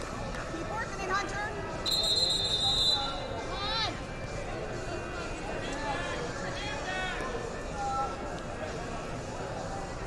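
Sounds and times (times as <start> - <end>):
whistle blast: 1.8 - 3.3.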